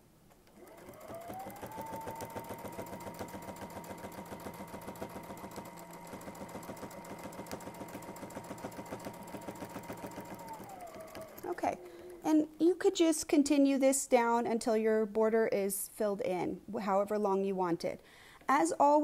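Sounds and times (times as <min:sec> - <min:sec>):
sewing machine stitching: 0:00.4 - 0:12.4.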